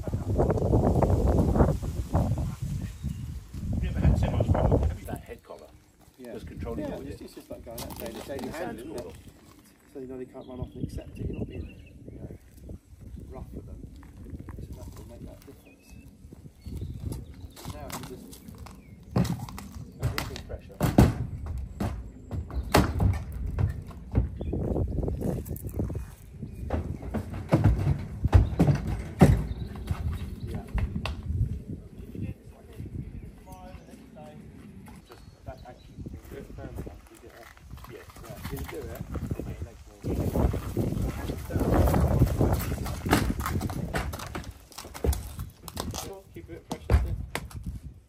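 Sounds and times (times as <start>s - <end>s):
horse hooves on trailer ramp: 16.9s - 31.3s, 36.6s - 47.8s.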